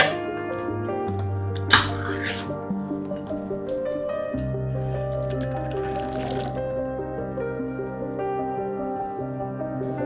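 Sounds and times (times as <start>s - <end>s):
background music sustained notes: 0.0s - 10.0s.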